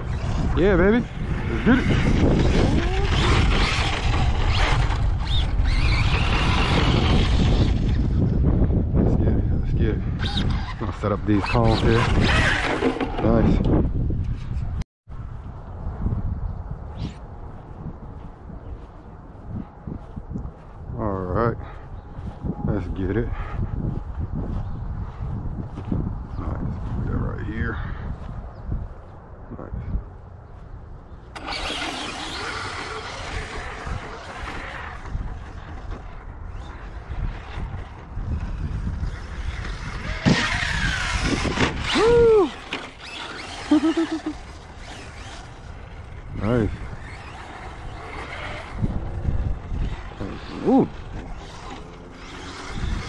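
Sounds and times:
electric motor whining: 0.0 - 8.4, 31.3 - 53.0.

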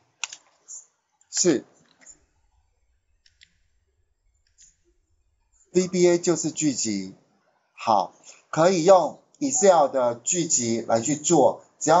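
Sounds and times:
computer mouse clicks: 0.2 - 2.3, 3.2 - 3.7.

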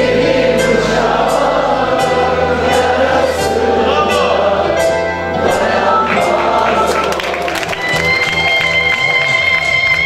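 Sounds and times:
mixed choir singing: 0.0 - 8.2
steady percussion beat: 0.0 - 9.2
folk music ensemble: 0.0 - 10.0.

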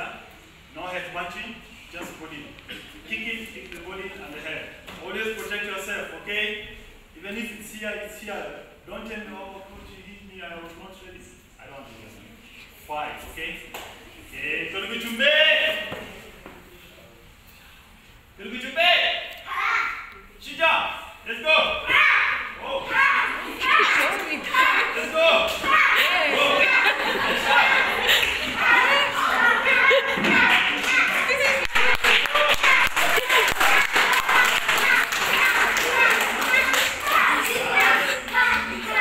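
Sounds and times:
chattering voices in a hall: 0.0 - 39.0.

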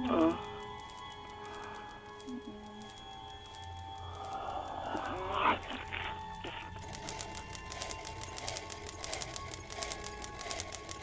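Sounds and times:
sustained music drone: 0.0 - 11.0
throaty animal-like growl: 4.3 - 6.2.

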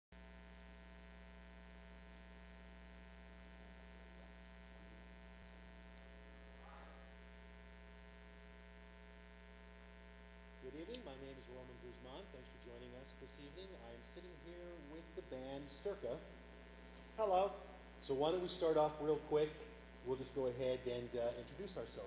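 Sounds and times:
electrical mains hum: 0.2 - 22.0.

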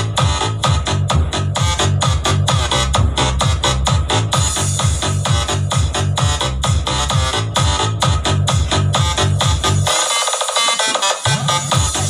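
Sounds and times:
electronic dance music with heavy bass: 0.0 - 12.0.

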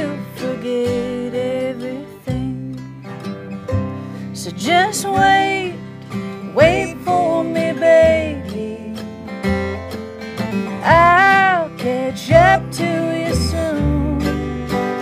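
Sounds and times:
acoustic guitar: 0.0 - 15.0
woman singing country song: 0.0 - 15.0.

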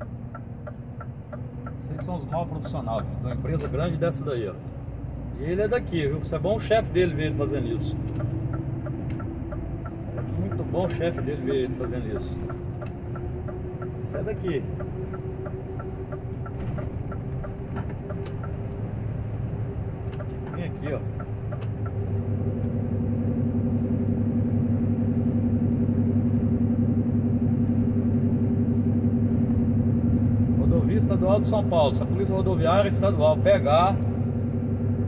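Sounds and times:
truck diesel engine running: 0.0 - 35.0.

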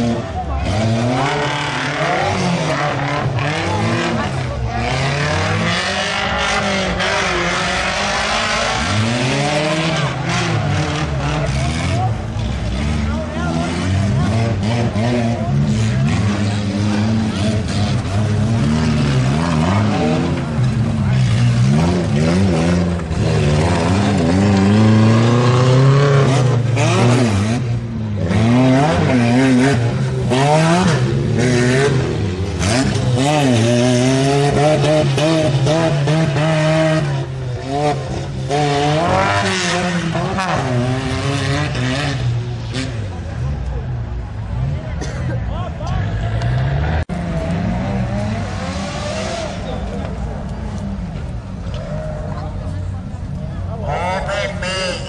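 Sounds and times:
off-road vehicle engine revving: 0.0 - 55.0.

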